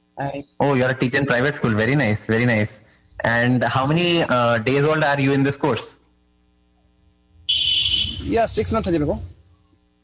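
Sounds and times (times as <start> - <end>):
faint low hum: 0.0 - 10.0
high buzzing tone with hiss: 1.2 - 10.0.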